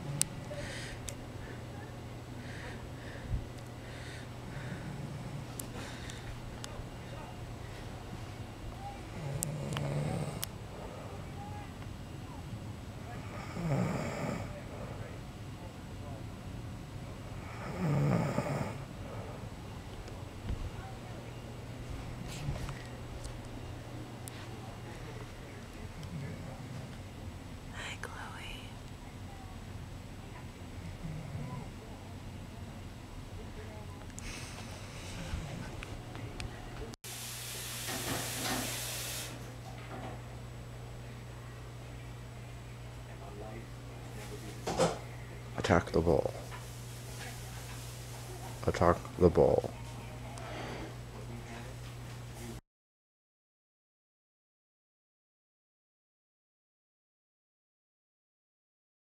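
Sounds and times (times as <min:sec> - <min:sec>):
low steady hum: 0:00.0 - 0:52.6
man snoring: 0:09.2 - 0:10.5, 0:13.3 - 0:14.6, 0:17.4 - 0:18.9
steady hiss: 0:37.1 - 0:39.5.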